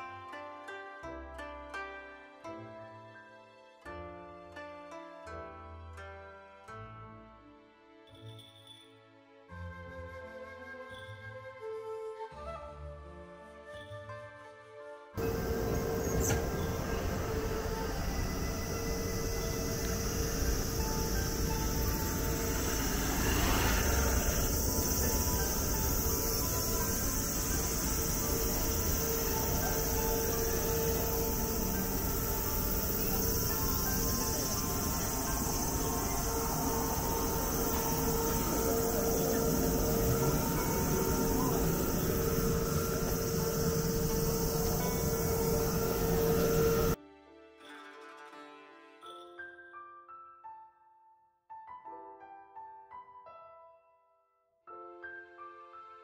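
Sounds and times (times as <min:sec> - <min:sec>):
cicadas buzzing: 0:15.2 - 0:47.0.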